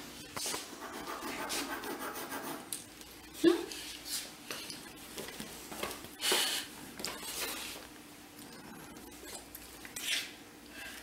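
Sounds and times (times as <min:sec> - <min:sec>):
drawing stick scratching paper: 0:00.6 - 0:02.7.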